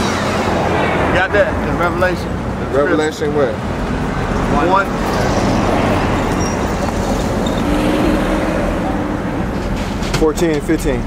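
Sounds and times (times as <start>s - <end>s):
engine hum: 0.0s - 11.0s
road traffic rumble: 0.0s - 11.0s.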